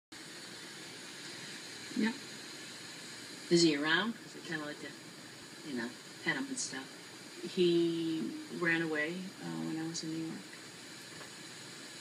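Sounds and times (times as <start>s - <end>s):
room ambience hiss: 0.1s - 12.0s.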